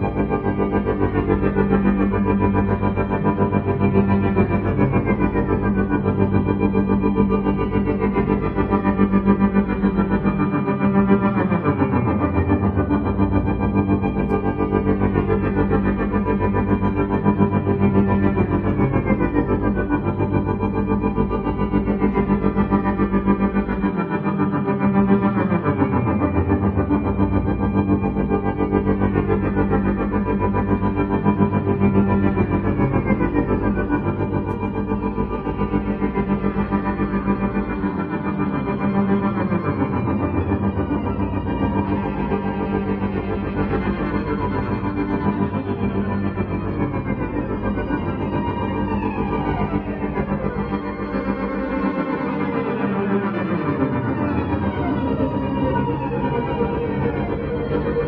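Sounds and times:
looped violin drone: 0.0s - 58.0s.

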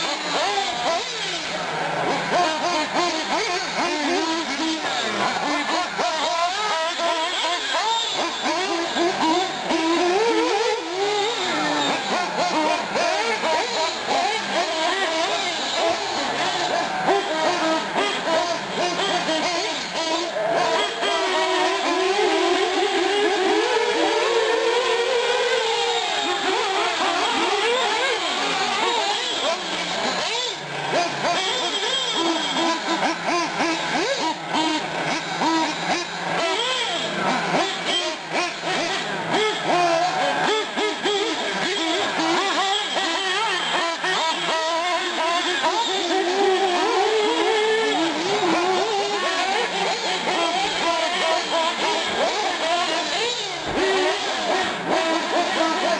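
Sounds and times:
model car engines whining: 0.0s - 55.9s.

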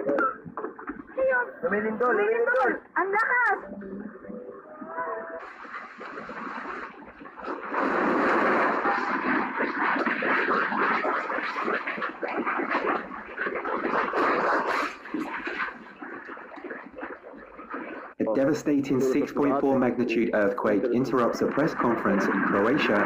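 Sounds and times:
earthquake rattling and clattering: 5.4s - 18.2s, 21.0s - 23.0s.

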